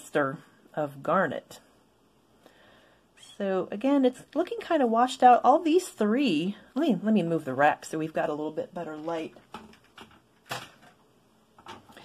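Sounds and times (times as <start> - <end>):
objects knocking and rustling on table: 9.4 - 11.0, 11.6 - 12.0.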